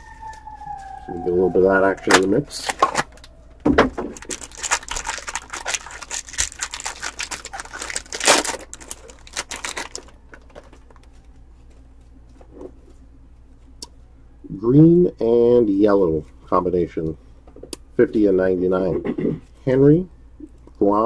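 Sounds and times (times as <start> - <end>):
foil wrapper tearing and crinkling: 4.0 - 11.1
card handling: 4.0 - 11.2.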